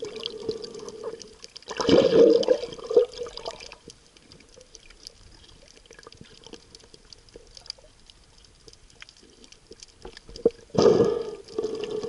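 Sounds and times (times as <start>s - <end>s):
low underwater hiss: 0.0s - 12.0s
underwater clicks and crackles: 0.0s - 12.0s.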